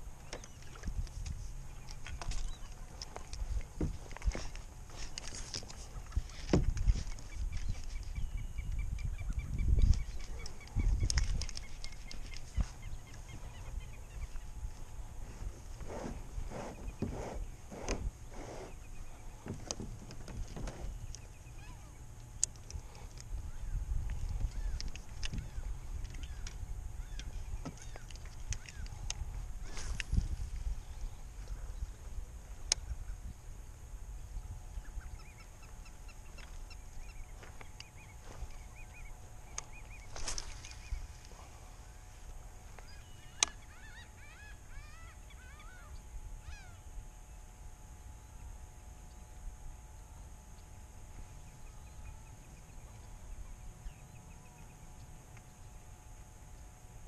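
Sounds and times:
waterbirds honking: 0.0s - 23.8s, 24.4s - 29.9s, 34.7s - 47.0s
wind rumble: 0.0s - 43.7s.

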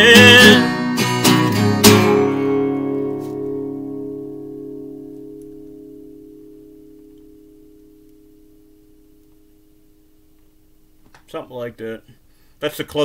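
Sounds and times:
acoustic guitar chord ringing: 0.0s - 11.1s.

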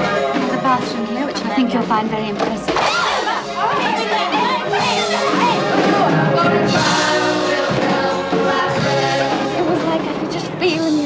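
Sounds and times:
music playing: 0.0s - 11.0s
voices talking over one another: 0.0s - 11.0s.

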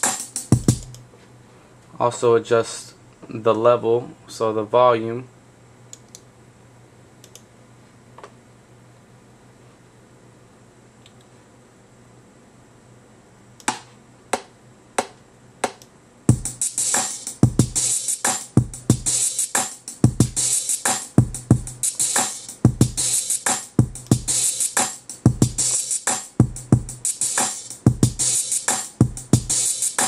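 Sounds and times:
hip-hop drum machine beat: 0.0s - 1.0s, 13.7s - 30.0s.

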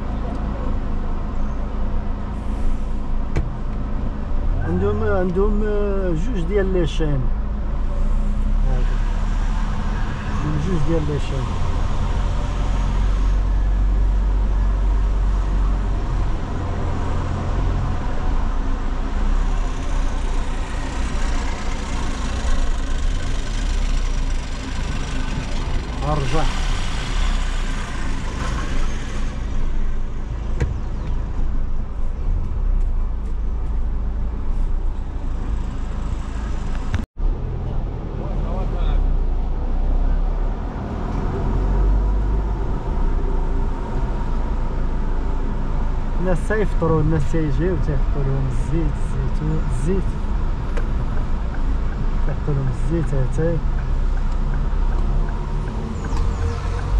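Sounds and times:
car engine and tyre rumble: 0.0s - 56.9s.

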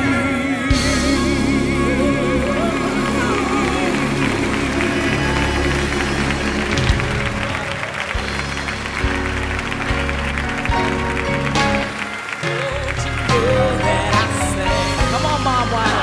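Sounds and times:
live gospel band music: 0.0s - 16.0s
drum hits: 0.7s - 12.0s
audience clapping along: 2.3s - 16.0s.

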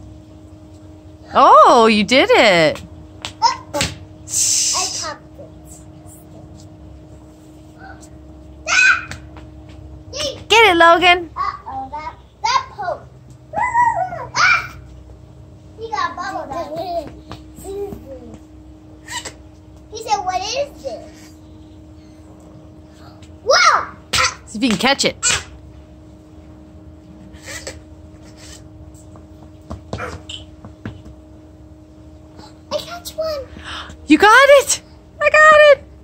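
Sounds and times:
low steady hum: 0.0s - 36.0s
small children playing: 3.2s - 4.0s, 7.6s - 10.6s, 11.3s - 21.4s, 22.4s - 24.6s.

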